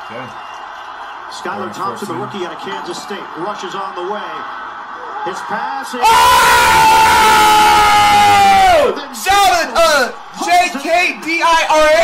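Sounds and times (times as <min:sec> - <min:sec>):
man screaming: 0:06.0 - 0:08.9.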